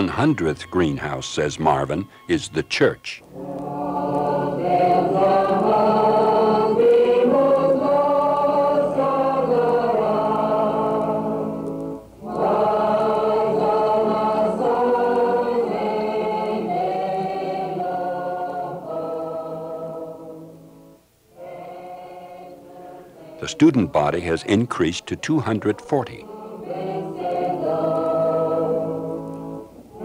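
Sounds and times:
choir singing held chords: 0.0s - 30.0s.

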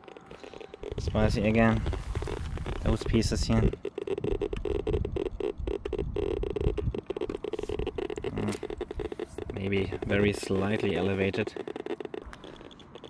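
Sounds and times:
geiger counter clicking: 0.0s - 13.0s.

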